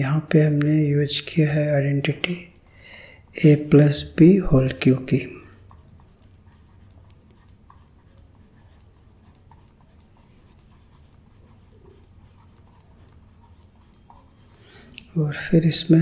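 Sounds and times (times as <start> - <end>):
steady low hum: 0.0 - 16.0
stylus scratching on tablet: 0.2 - 2.7, 3.4 - 16.0.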